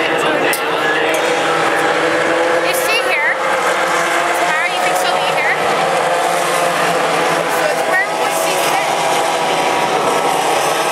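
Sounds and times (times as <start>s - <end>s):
din of many engines: 0.0s - 10.9s
race cars passing by: 0.0s - 10.9s.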